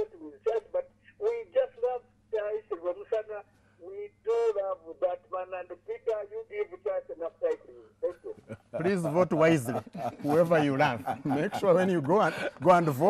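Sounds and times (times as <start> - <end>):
person talking over telephone: 0.0 - 8.4.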